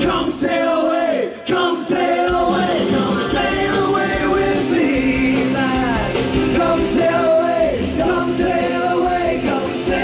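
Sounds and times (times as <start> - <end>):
keyboard: 0.0 - 10.0
man singing into microphone: 0.0 - 10.0.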